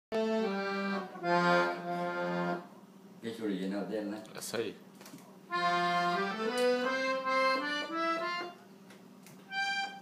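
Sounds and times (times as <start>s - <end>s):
accordion chords: 0.1s - 3.0s, 5.5s - 8.8s, 9.5s - 10.0s
man talking: 3.2s - 4.8s.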